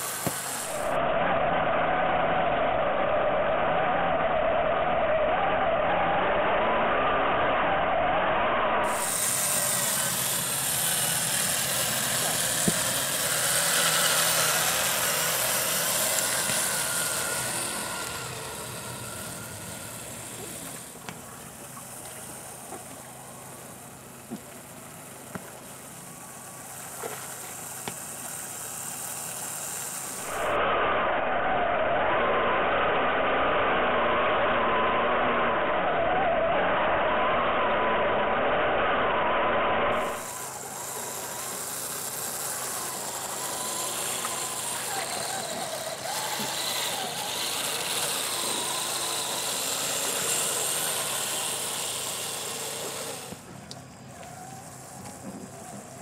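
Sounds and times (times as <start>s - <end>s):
model truck motor whining: 0.0s - 56.0s.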